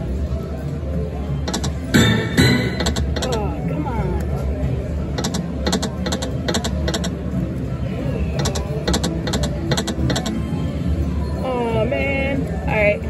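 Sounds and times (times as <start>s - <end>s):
slot machine electronic clicks: 1.5s - 3.4s, 5.1s - 7.2s, 8.4s - 10.4s.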